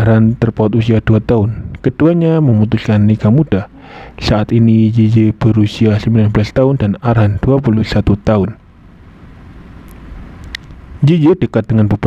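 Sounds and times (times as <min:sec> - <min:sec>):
low steady rumbling: 0:00.0 - 0:12.0
faint short clicks: 0:09.8 - 0:10.8.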